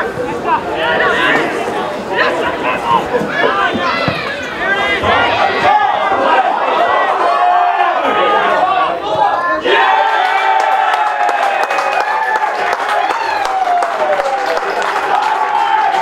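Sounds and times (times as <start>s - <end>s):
crowd cheering: 0.0s - 16.0s
players and spectators shouting: 0.0s - 16.0s.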